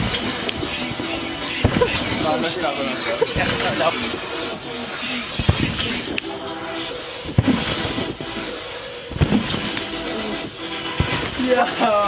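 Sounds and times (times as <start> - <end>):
background music: 0.0 - 12.0
thumps on trampoline: 1.6 - 2.4, 3.4 - 3.9, 5.4 - 6.0, 7.3 - 8.2, 9.1 - 9.8, 11.0 - 11.5.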